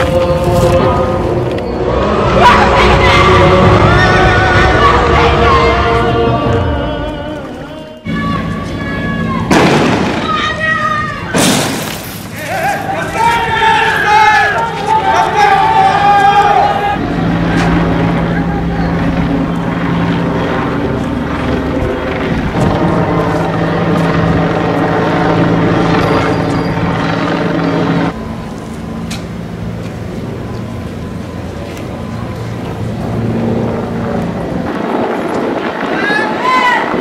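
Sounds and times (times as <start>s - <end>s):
steady engine drone: 0.0s - 37.0s
voices: 0.0s - 37.0s.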